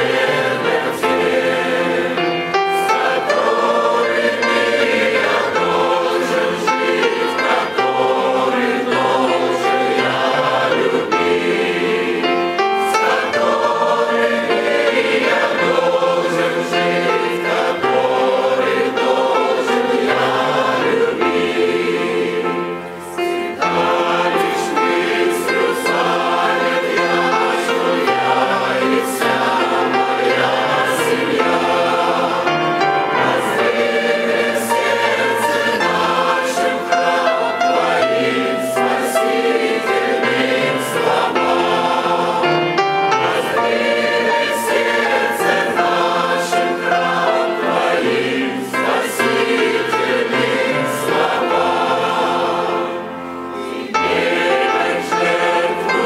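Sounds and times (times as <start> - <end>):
mixed choir singing a hymn: 0.0 - 56.0.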